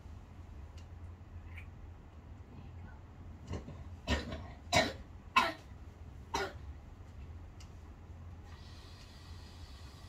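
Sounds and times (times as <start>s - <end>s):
low room hum: 0.0s - 10.0s
person coughing: 4.1s - 5.7s, 6.3s - 6.6s.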